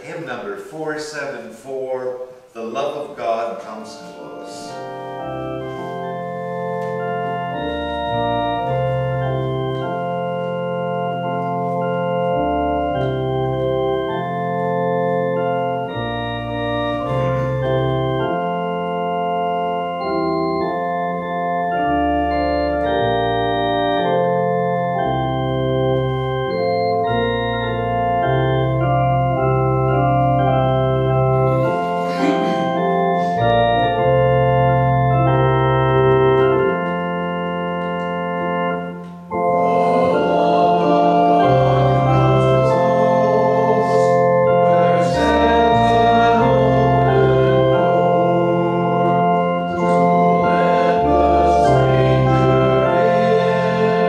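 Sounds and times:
church organ playing hymn chords: 0:00.0 - 0:54.0.

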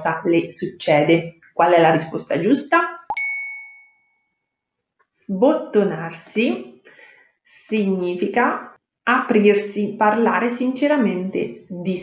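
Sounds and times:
chime ding: 0:03.1 - 0:04.4.

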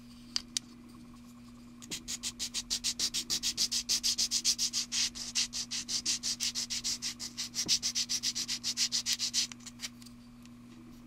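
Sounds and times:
plastic part scraping on sanding sponge: 0:01.9 - 0:09.9.

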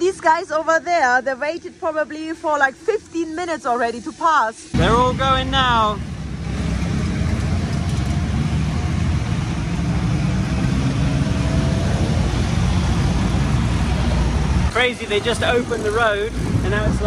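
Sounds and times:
motorcycles and cars passing: 0:04.8 - 0:17.0.

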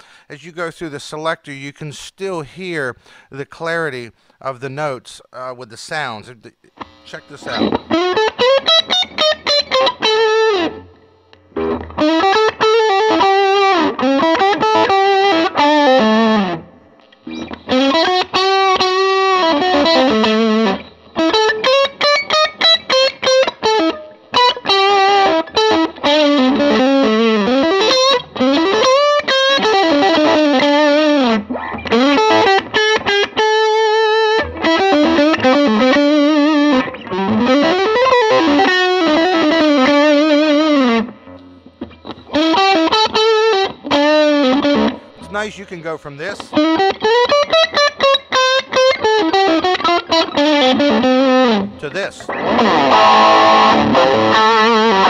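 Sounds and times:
distorted electric guitar lead: 0:06.4 - 0:55.0.

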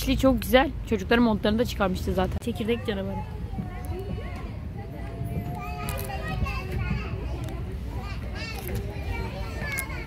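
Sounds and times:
children chattering and calling: 0:00.0 - 0:10.0.

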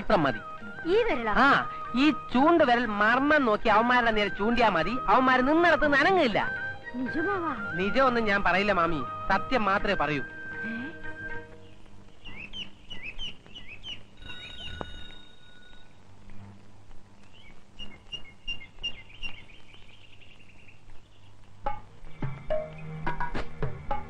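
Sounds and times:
background music with low bass: 0:00.0 - 0:12.6, 0:21.4 - 0:24.0
birds chirping: 0:00.0 - 0:16.1, 0:17.2 - 0:23.0
bell-like ringing tone: 0:14.2 - 0:16.0.

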